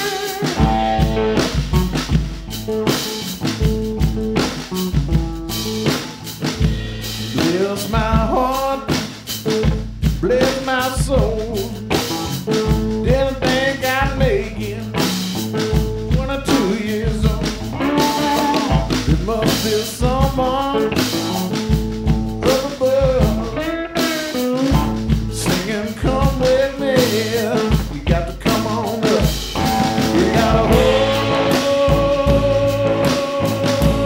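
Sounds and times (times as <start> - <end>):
man singing: 0.0 - 1.5, 7.3 - 9.4, 10.1 - 21.7, 22.4 - 34.0
bass: 0.0 - 34.0
drums keeping a beat: 0.0 - 34.0
electric guitar: 0.0 - 34.0.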